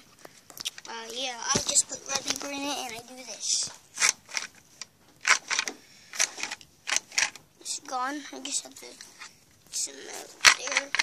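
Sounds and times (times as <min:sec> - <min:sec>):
plastic toy clicks and clacks: 0:05.2 - 0:07.4, 0:10.4 - 0:11.0.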